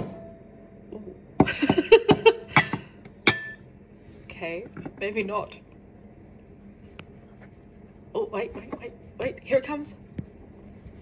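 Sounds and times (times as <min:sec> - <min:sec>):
ceramic mug clinking against bowl: 0:02.6 - 0:03.6.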